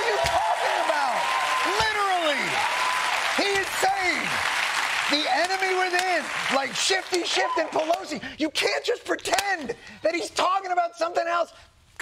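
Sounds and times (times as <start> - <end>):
audience applauding loudly: 0.0 - 8.2.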